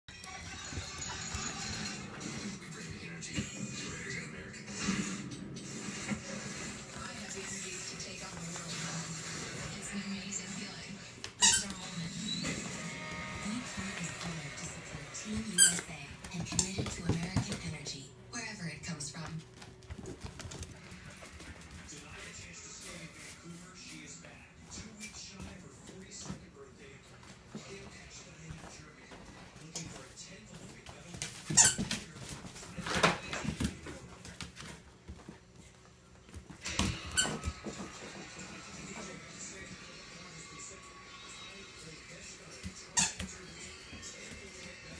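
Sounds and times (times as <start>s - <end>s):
squeaky toy squeaking: 11.4s - 11.9s.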